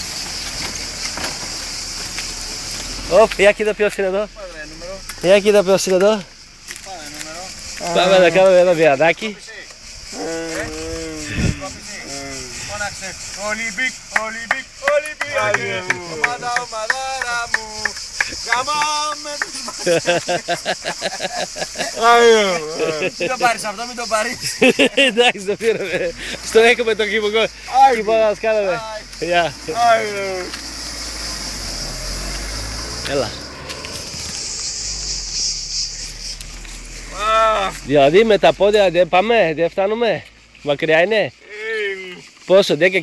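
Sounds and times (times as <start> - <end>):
car engine rumble: 0.0 - 40.7
insects chirring: 0.0 - 43.0
man laughing and calling out: 10.1 - 30.2, 37.0 - 37.8, 41.4 - 42.2.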